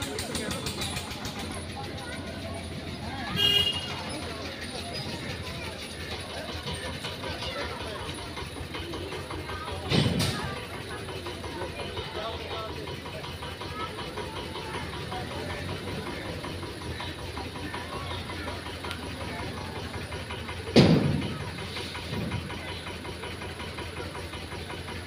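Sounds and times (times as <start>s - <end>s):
murmur of distant voices: 0.0s - 25.0s
loud thump: 20.8s - 21.2s.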